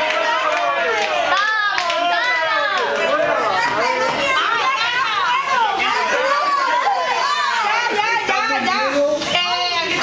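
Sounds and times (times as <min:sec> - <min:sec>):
group of voices talking excitedly: 0:00.0 - 0:10.0.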